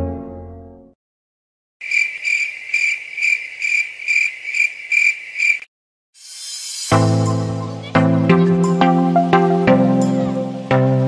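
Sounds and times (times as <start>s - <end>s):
music: 0.0s - 1.0s, 6.9s - 11.0s.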